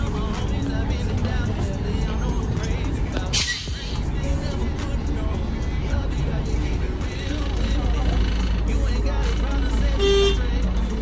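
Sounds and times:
city traffic rumble: 0.0s - 11.0s
short car horn toot: 10.0s - 10.4s.

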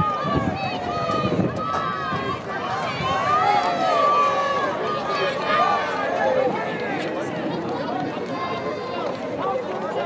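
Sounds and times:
many voices shouting: 0.0s - 9.6s.

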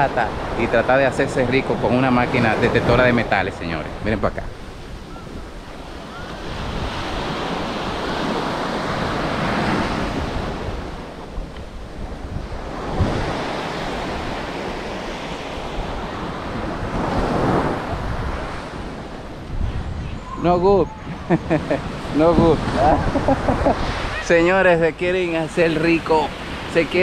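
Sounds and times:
waves washing onto beach: 0.0s - 27.0s
wind rumbling on microphone: 0.0s - 27.0s.

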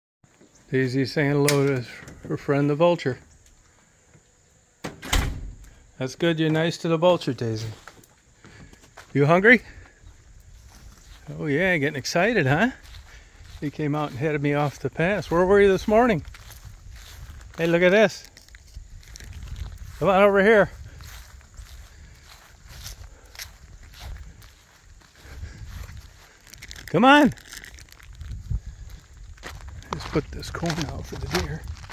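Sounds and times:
footsteps on ground: 7.4s - 31.9s.

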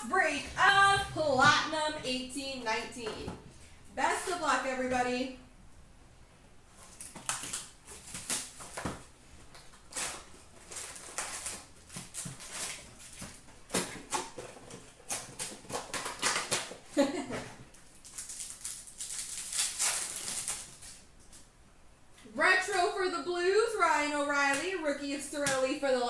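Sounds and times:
foil wrappers crinkling and tearing: 6.8s - 21.5s.

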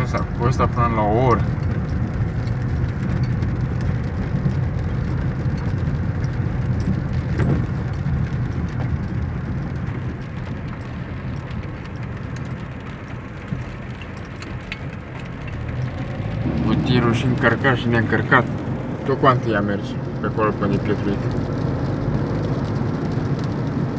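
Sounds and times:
car engine and tyre rumble: 0.0s - 23.9s
light ticks of rain: 0.0s - 23.9s.

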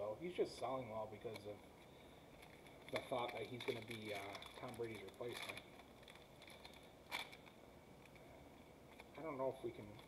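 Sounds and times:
foil wrapper crinkle: 2.4s - 8.2s.

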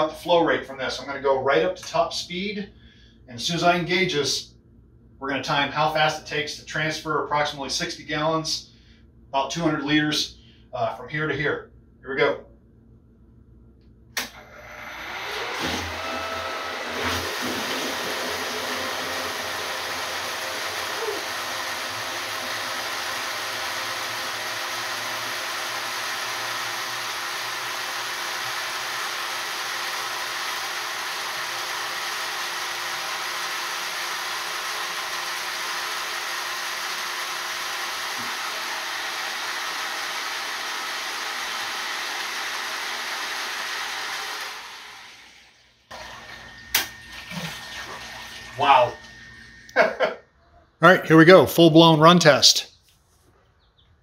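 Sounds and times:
pump rushing: 14.2s - 49.5s
pump rising whine: 14.2s - 50.1s
water pouring into plastic tank: 45.9s - 49.0s.

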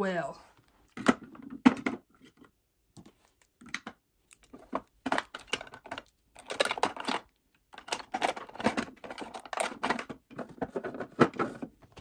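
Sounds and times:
plastic makeup tubes clicking: 3.4s - 10.4s.

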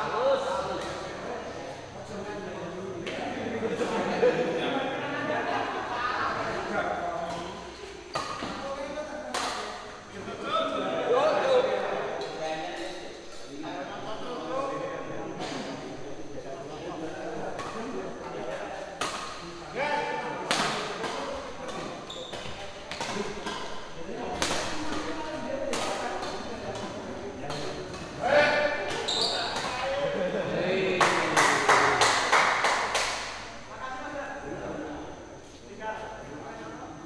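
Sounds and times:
rackets hitting shuttlecock: 7.3s - 8.6s, 9.3s - 9.8s, 19.0s - 19.6s, 20.4s - 29.9s.

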